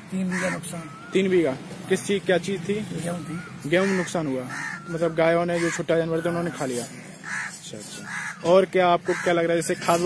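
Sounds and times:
man talking: 0.0 - 7.0, 7.6 - 10.0
crows cawing: 0.1 - 2.2, 2.8 - 10.0.

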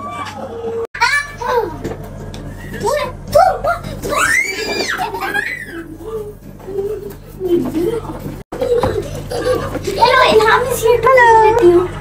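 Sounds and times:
children calling and laughing: 0.0 - 12.0
child squealing: 4.1 - 5.9.

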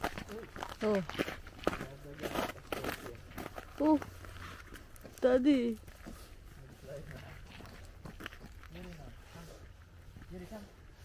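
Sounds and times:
footsteps crunching on snow: 0.0 - 11.0.

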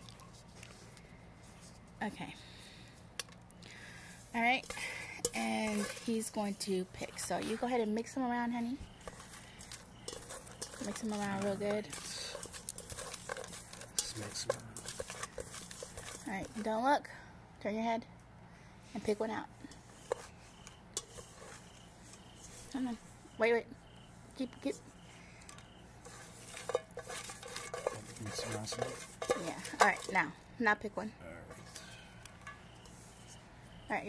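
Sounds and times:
paper slips rustling in bowl: 9.0 - 16.6, 26.5 - 30.1.

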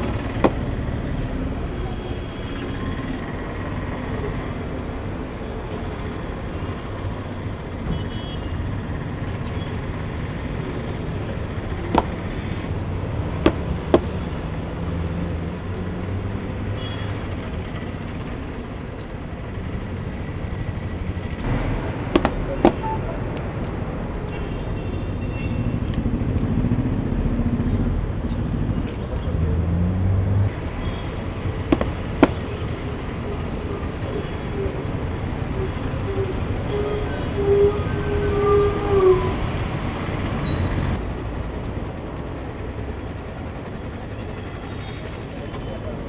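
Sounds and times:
outdoor rumble: 9.0 - 24.4
pitched notes: 22.4 - 23.6.

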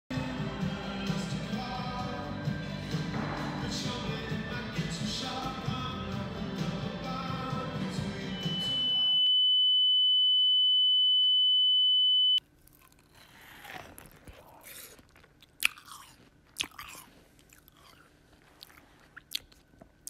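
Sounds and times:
biting and chewing: 12.4 - 20.0.

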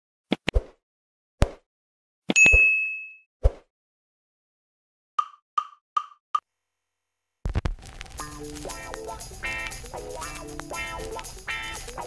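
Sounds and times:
bright ding: 2.4 - 3.2.

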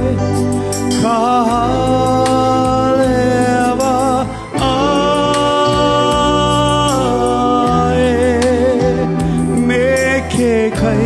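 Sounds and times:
backing accompaniment with bass: 0.0 - 11.0
man singing: 0.0 - 11.0.

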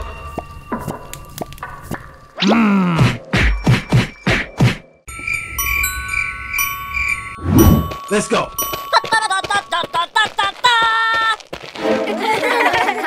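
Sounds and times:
twinkling music with chimes: 0.0 - 1.5, 5.1 - 10.2.

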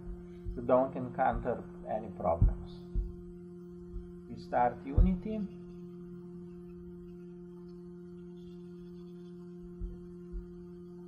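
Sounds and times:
soft low thump: 0.0 - 0.7, 2.3 - 4.2, 4.9 - 5.4, 9.7 - 10.5
steady two-tone low hum: 0.0 - 11.0.

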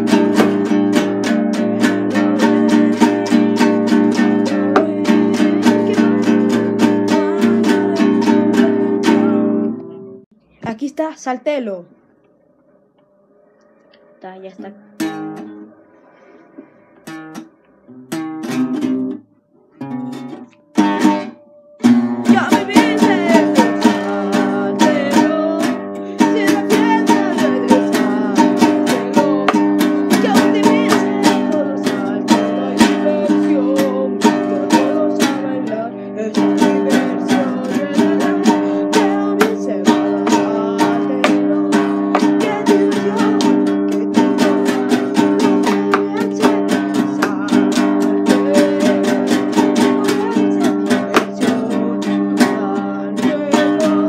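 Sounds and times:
guitar strumming: 0.0 - 10.2, 13.6 - 54.0.

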